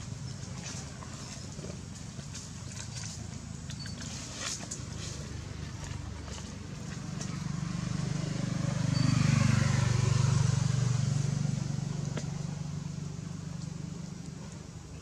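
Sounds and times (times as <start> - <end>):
vehicle engine passing by: 3.8 - 14.8.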